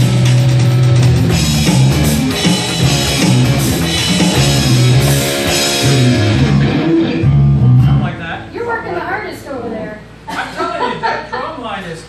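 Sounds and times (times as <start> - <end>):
rock band playing live: 0.0 - 8.8.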